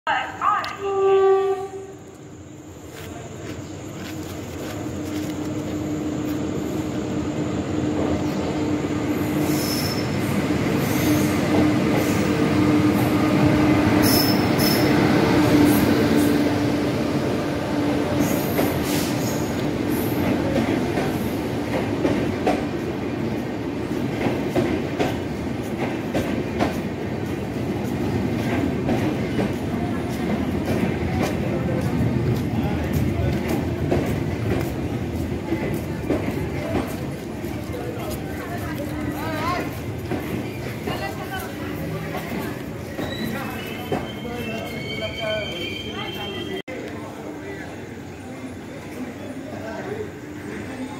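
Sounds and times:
train hum: 0.1 - 50.9
train wheel squeals: 8.2 - 12.4, 14.0 - 15.0, 18.1 - 20.3, 42.8 - 46.6.

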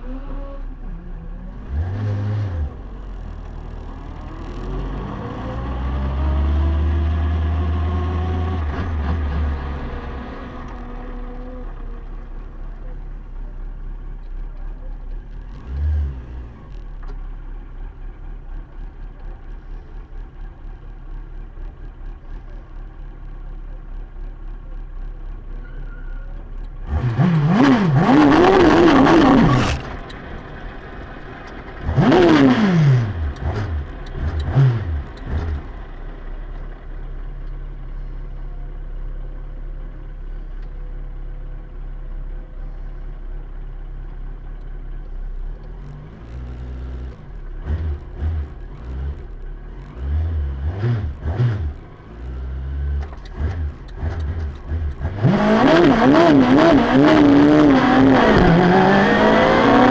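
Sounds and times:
car engine revving: 0.0 - 12.0, 26.8 - 36.1, 45.6 - 59.9.

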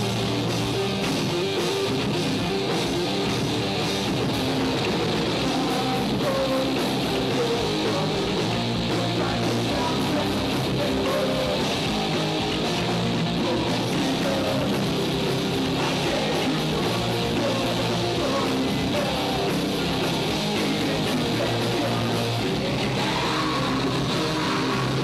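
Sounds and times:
live heavy rock band: 0.0 - 25.0.

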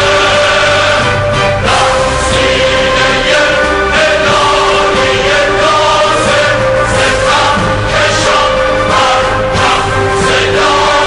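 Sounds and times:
choir singing sustained notes: 0.0 - 11.0
orchestra playing: 0.0 - 11.0.

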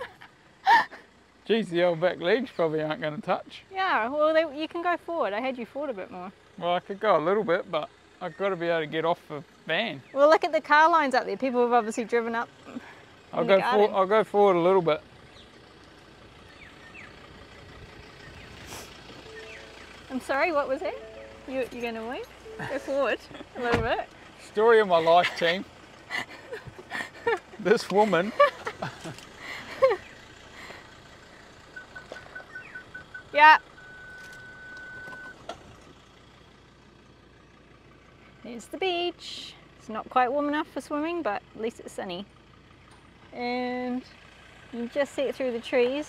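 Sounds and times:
continuous high warning beep: 19.2 - 23.6, 31.7 - 35.5.

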